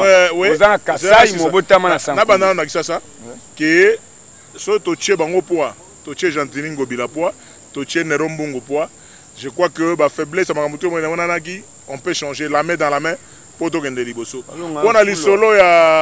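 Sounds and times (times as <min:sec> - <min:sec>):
man talking: 0:00.0 - 0:04.0, 0:04.6 - 0:16.0
crickets chirring: 0:00.0 - 0:16.0.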